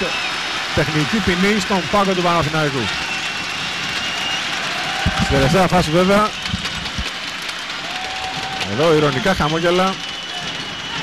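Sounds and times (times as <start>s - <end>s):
arena crowd hubbub: 0.0s - 11.0s.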